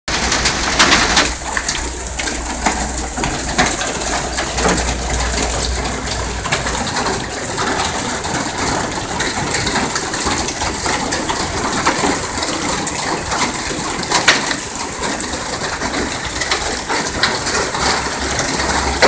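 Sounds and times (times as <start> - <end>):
hail pelting metal and gravel: 0.1 - 19.0
low rumble: 0.7 - 11.6.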